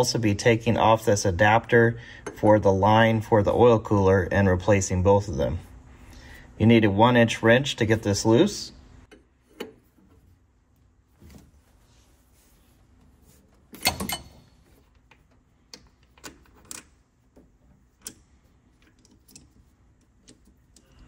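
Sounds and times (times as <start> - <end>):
metal wrench clinking on fitting: 13.8 - 14.5.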